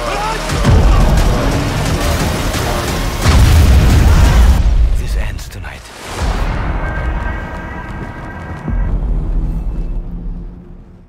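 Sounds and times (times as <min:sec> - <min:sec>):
deep boom: 0:03.2 - 0:05.2.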